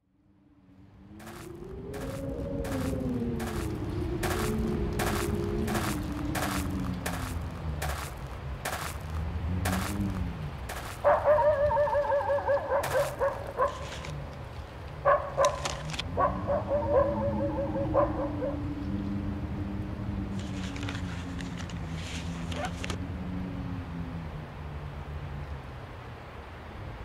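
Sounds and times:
slow gliding low tones: 0:00.0 - 0:12.1
low rumble: 0:00.6 - 0:11.0
wavering high whine: 0:00.8 - 0:07.6
footsteps crunching in snow: 0:01.2 - 0:12.1, 0:12.8 - 0:14.2, 0:20.3 - 0:23.0.

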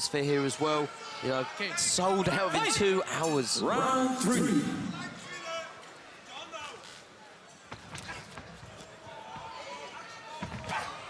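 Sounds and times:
arena crowd: 0:00.0 - 0:11.0.

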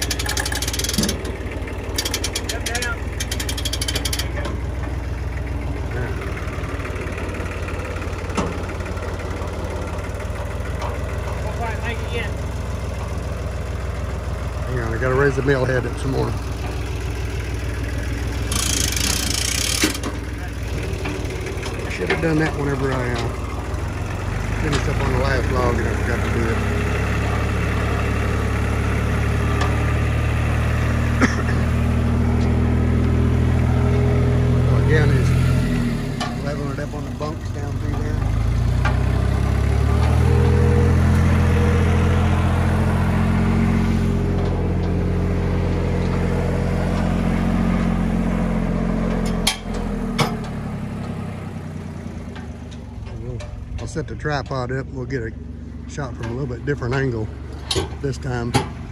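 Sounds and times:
engine running: 0:00.0 - 0:58.9.

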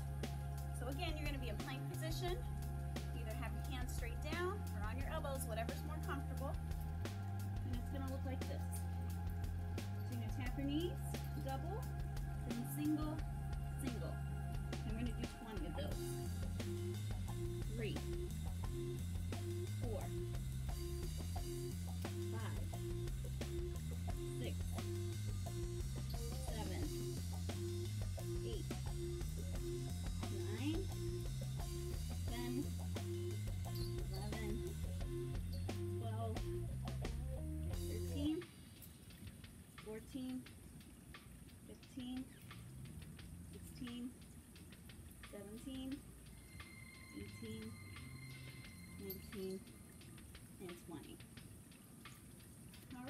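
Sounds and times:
background music with bass line: 0:00.0 - 0:38.5, 0:45.3 - 0:50.1.

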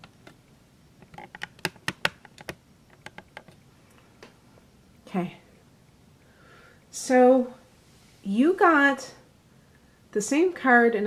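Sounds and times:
sharp clicks and taps: 0:01.0 - 0:03.6.

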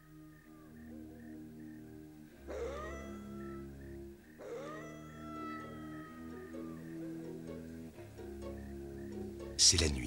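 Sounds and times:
soft background music: 0:00.0 - 0:10.0
wolf howling: 0:02.4 - 0:03.8, 0:04.4 - 0:07.0.

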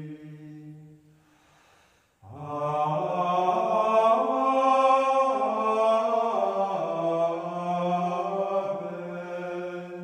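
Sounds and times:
male voices chanting: 0:00.0 - 0:00.9, 0:02.2 - 0:10.0.

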